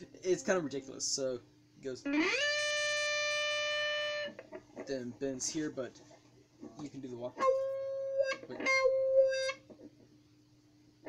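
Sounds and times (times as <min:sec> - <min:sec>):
electric guitar note sliding up: 0:02.1 - 0:04.4, 0:07.4 - 0:09.6.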